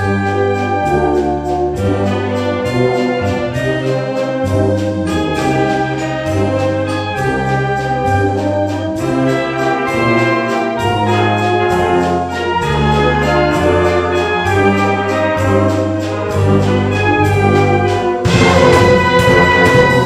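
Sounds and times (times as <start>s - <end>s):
wind band playing: 0.0s - 20.0s.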